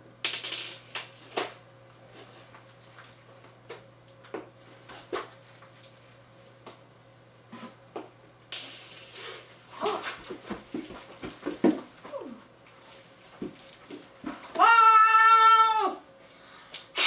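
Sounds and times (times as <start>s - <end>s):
child imitating a turkey: 14.6s - 16.0s.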